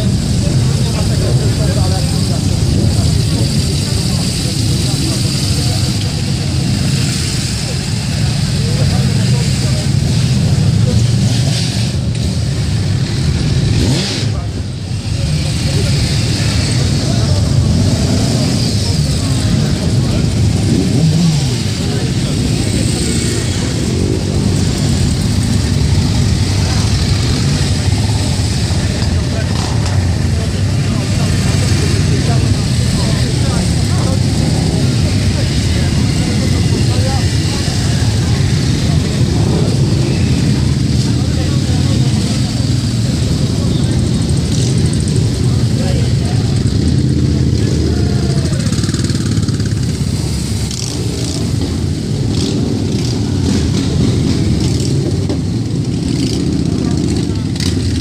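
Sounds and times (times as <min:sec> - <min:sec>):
motorcycle engines at low revs: 0:00.0 - 0:58.0.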